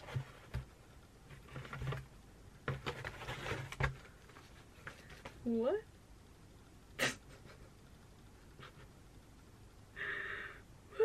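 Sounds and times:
packaging rustling and crinkling: 1.3s - 5.4s.

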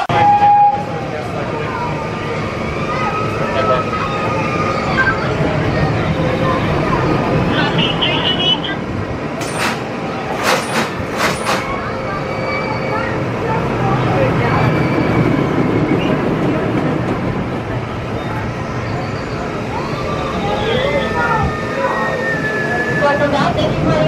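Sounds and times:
roller coaster rumbling on track: 0.0s - 24.0s.

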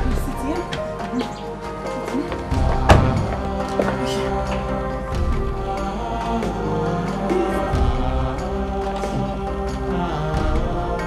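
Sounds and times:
film score music with held notes: 0.0s - 11.0s
soft percussive hits: 2.2s - 5.3s.

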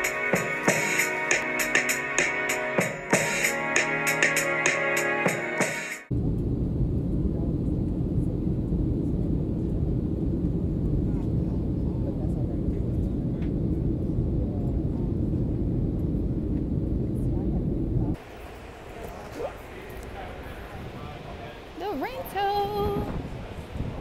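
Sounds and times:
airliner cabin low rumble: 6.1s - 24.0s
faint voices: 17.2s - 24.0s.

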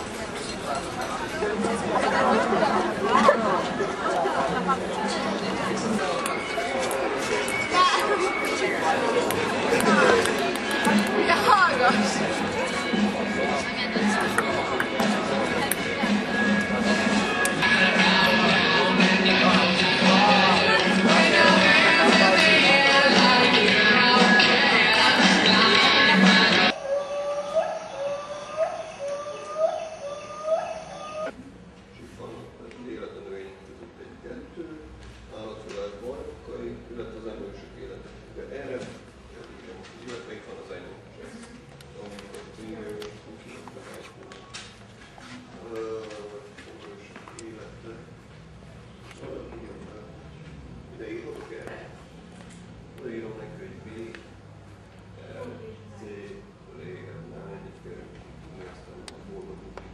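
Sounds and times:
indistinct chatter: 0.0s - 31.5s
bird call rising tone: 26.8s - 31.3s.

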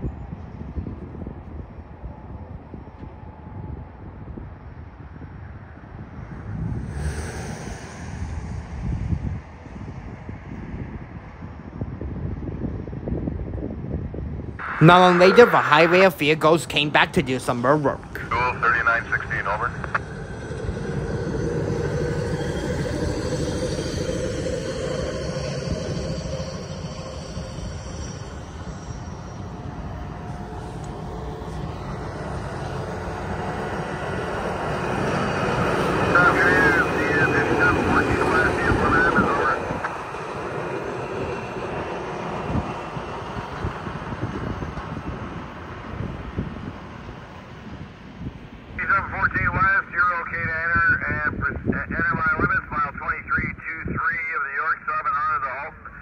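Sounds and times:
warbling high sound: 14.6s - 45.8s.

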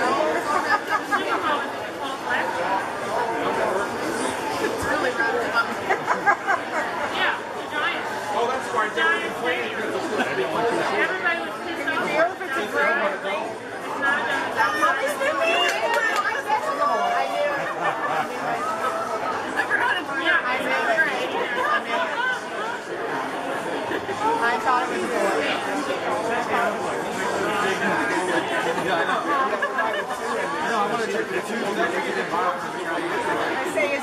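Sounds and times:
people chattering: 0.0s - 34.0s.

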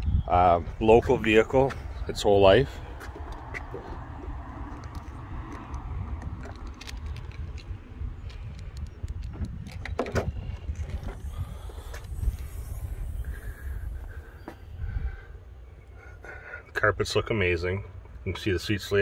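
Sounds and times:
wind rumbling on microphone: 0.0s - 15.6s
microphone handling noise: 8.2s - 15.3s.

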